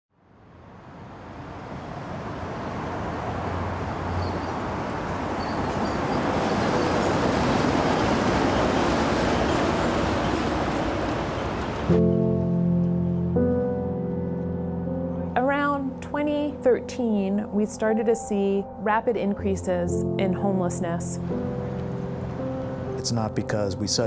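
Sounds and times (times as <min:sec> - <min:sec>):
city traffic: 0:00.2 - 0:24.0
monorail train rushing roar: 0:00.4 - 0:12.1, 0:19.7 - 0:24.0.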